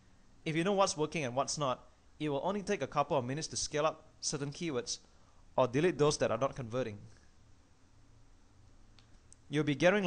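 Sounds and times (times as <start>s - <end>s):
faint background hiss: 0.0s - 10.0s
faint hum: 0.0s - 10.0s.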